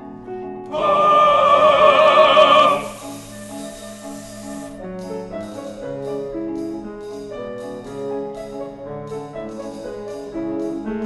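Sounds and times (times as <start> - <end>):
chamber orchestra playing: 0.7 - 6.4.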